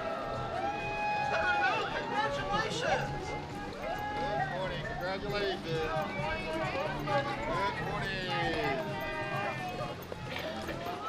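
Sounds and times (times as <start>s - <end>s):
people calling out and cheering: 0.0s - 11.0s.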